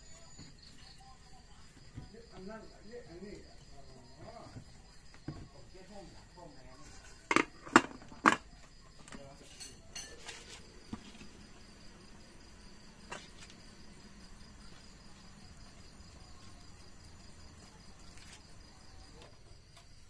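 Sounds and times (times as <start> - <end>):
crickets chirping: 0.0 - 20.0.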